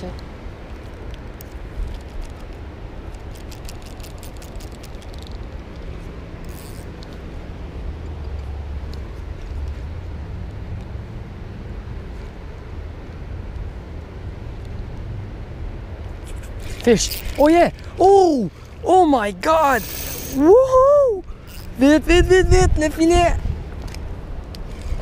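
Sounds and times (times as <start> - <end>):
low outdoor rumble beside river: 0.0 - 25.0
short hiss: 19.8 - 20.4.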